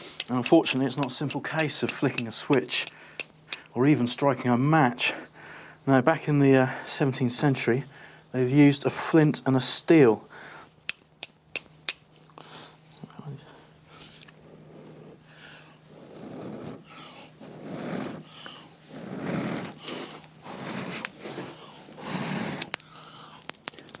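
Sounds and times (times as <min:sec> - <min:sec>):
flint striking steel clicks: 0:00.2 - 0:03.7, 0:10.8 - 0:12.0, 0:22.6 - 0:24.0
blowing on tinder: 0:14.6 - 0:22.8.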